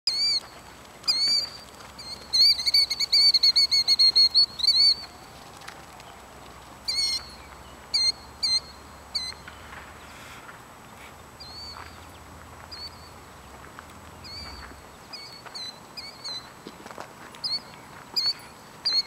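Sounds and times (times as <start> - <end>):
bird calling loudly: 1.1 - 5.2, 6.9 - 9.5.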